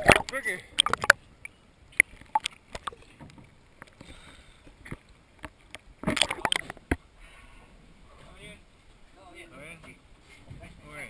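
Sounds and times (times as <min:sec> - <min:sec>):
water clicking on camera housing: 0:00.0 - 0:01.2, 0:02.0 - 0:03.0, 0:04.9 - 0:07.0
small waves lapping and splashing: 0:00.0 - 0:07.2.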